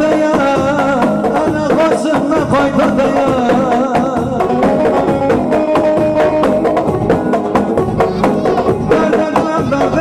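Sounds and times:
ornamented melody line: 0:00.0 - 0:10.0
steady drum beat: 0:00.0 - 0:10.0.

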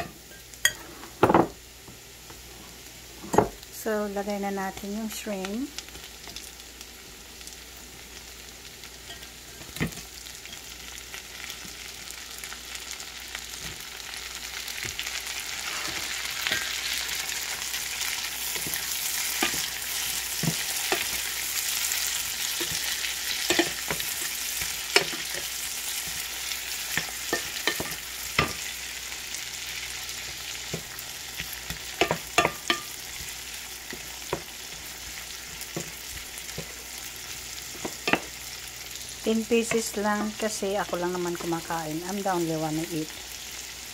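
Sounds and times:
shrimp sizzling in a frying pan: 0:00.0 - 0:43.9.

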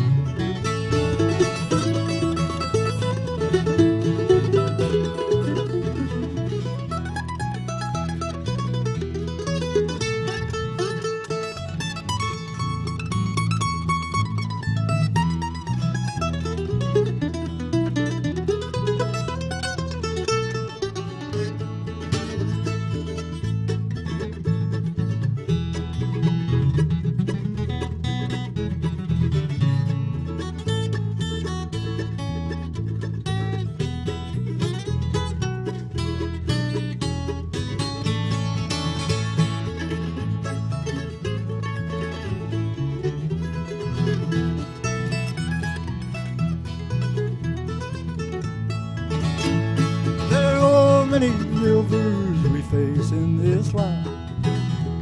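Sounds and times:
electric bass line: 0:00.0 - 0:55.0
mandolin melody: 0:00.0 - 0:55.0
strummed acoustic guitar: 0:00.0 - 0:55.0.

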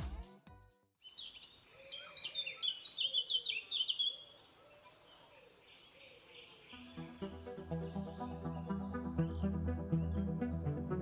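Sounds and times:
music with a beat: 0:00.0 - 0:00.8
faint outdoor hiss: 0:01.0 - 0:07.4
birds chirping: 0:01.0 - 0:11.0.

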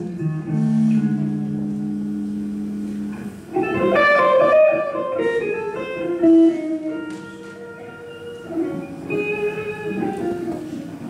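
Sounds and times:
electric guitars and bass chord ringing: 0:00.0 - 0:10.5.

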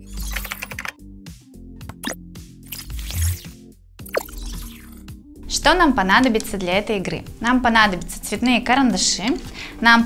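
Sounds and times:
keyboard typing clicks: 0:00.2 - 0:01.0.

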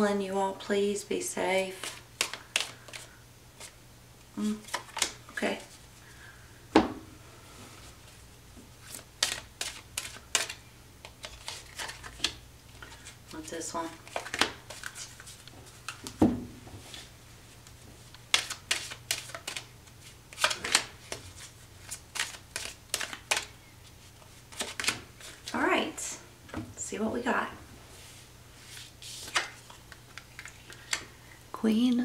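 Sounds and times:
cards being shuffled: 0:01.8 - 0:03.8, 0:04.4 - 0:05.2, 0:08.8 - 0:16.2, 0:16.9 - 0:25.6, 0:28.6 - 0:31.0.

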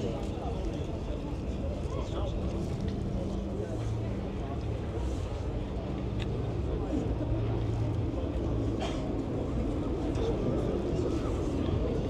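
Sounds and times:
murmur of crowd: 0:00.0 - 0:12.0.

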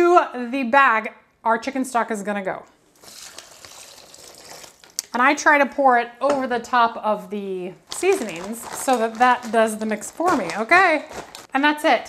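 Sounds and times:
liquid pouring and splashing: 0:02.9 - 0:05.1.

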